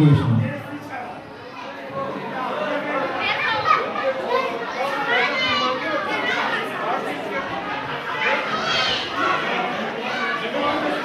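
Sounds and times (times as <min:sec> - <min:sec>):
children chattering in echoing hall: 0:00.0 - 0:11.0.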